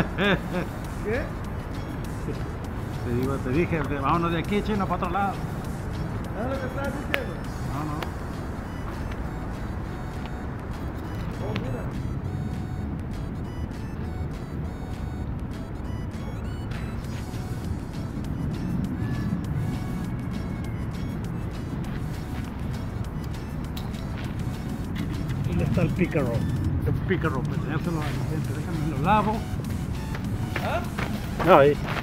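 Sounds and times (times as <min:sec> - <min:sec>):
low rumble of road traffic: 0:00.0 - 0:32.0.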